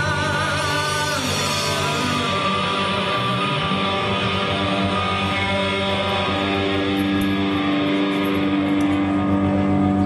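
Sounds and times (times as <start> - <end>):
rock band holding a chord: 0.0 - 10.0.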